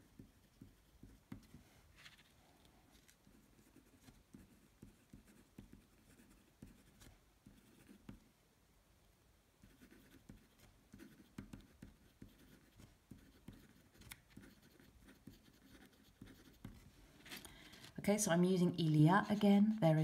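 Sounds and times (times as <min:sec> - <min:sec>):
marker pen scratching on paper: 0:00.0 - 0:08.3, 0:09.6 - 0:17.9, 0:19.1 - 0:20.0.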